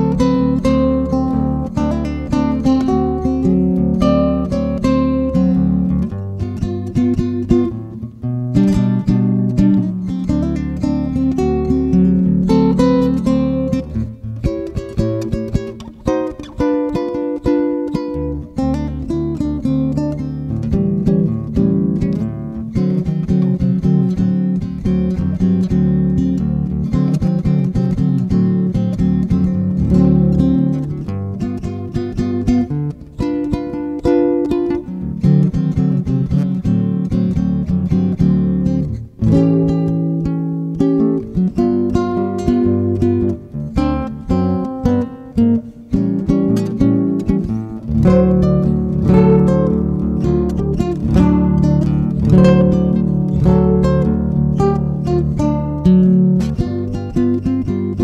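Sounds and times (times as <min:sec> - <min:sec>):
fingerpicked classical guitar blues: 0:00.0 - 0:58.0.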